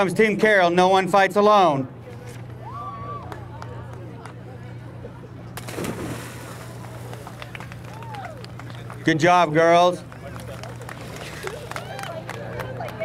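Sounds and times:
steady low hum: 0.0 - 13.0
splash into water: 5.6 - 7.2
churning water: 5.6 - 9.0.

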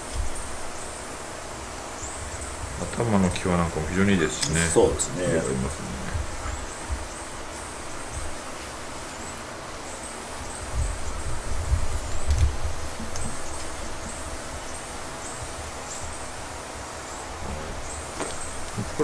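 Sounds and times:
steady background hiss: 0.0 - 19.0
low rumbling bumps: 2.3 - 8.4.

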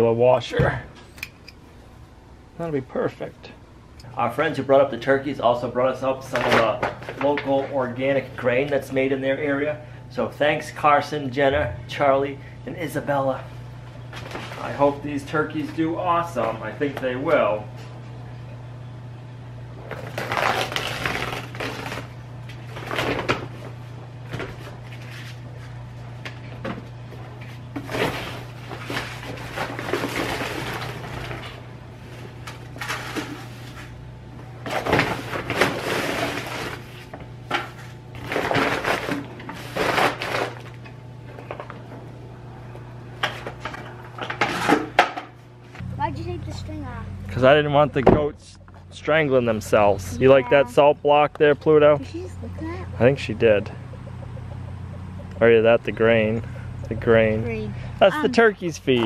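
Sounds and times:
steady low hum: 0.0 - 59.0
paper sack crinkling: 19.9 - 23.8, 27.8 - 33.9, 34.6 - 37.1, 37.8 - 40.8.

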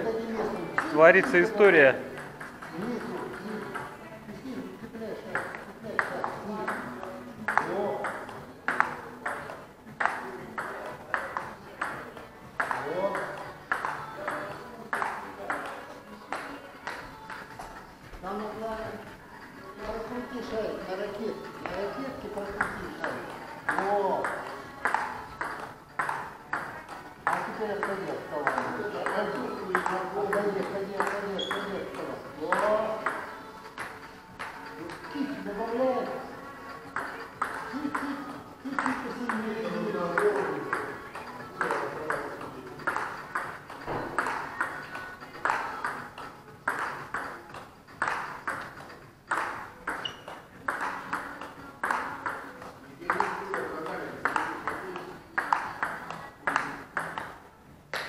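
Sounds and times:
ping pong ball clicking off bats: 0.6 - 4.0, 5.2 - 17.8, 19.8 - 58.0.

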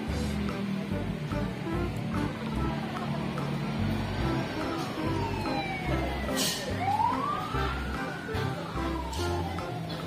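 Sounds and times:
background music: 0.0 - 10.0
wailing siren: 4.8 - 9.8.

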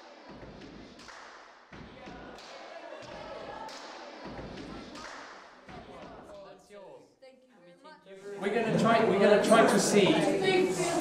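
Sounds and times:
indistinct chatter of voices: 8.1 - 11.0.

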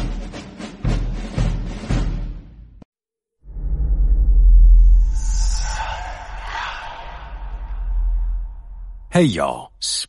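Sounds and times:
deep rumbling: 3.4 - 9.1
hissing whoosh: 4.2 - 9.1.

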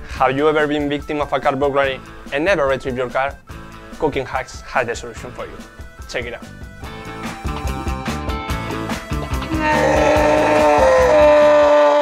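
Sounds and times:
background music with a beat: 0.0 - 12.0
man screaming: 9.4 - 12.0.

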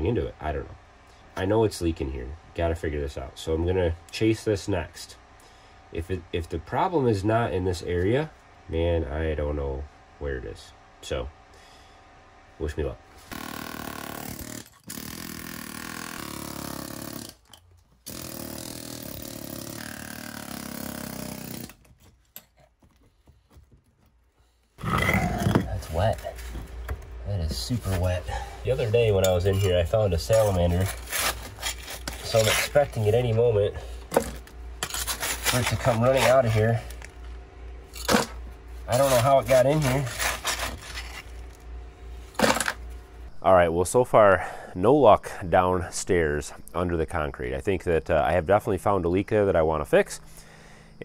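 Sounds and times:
air hammer chipping concrete: 13.2 - 21.9
gravel scraped by hand: 27.5 - 34.0, 34.8 - 37.2, 38.8 - 41.6.

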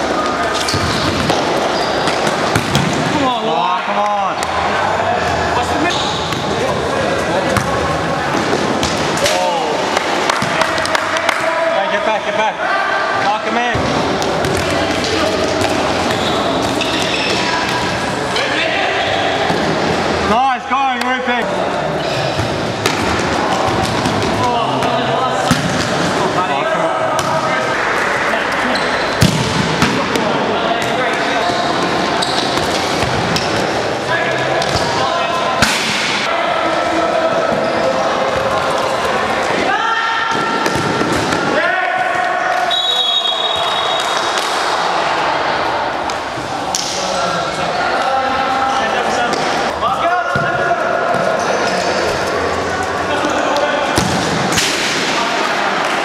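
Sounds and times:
players shouting: 0.0 - 56.0.

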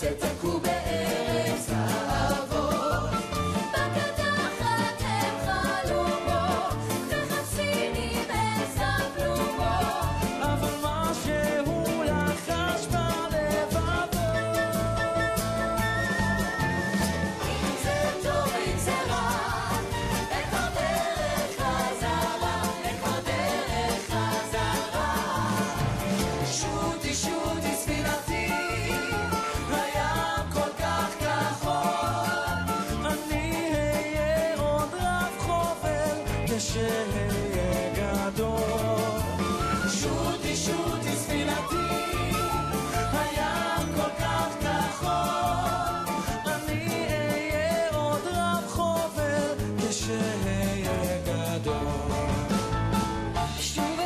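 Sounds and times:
singer singing lead: 0.0 - 52.6
live band playing: 0.0 - 54.0
man singing into microphone: 10.4 - 15.8, 33.0 - 52.4, 53.5 - 54.0
audience clapping along: 17.5 - 26.6.

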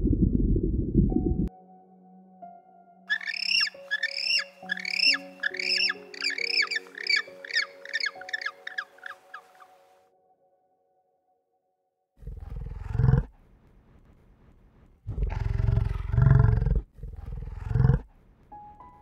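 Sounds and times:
penguins braying calls: 3.1 - 9.9
bison grunt: 12.2 - 13.3, 15.1 - 18.1.

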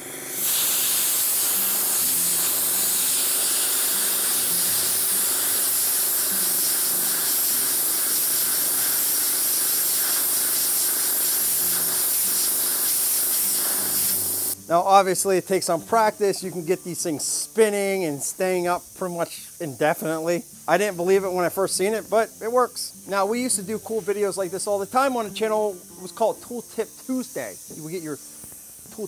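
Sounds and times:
compressed air hissing: 0.0 - 29.0.

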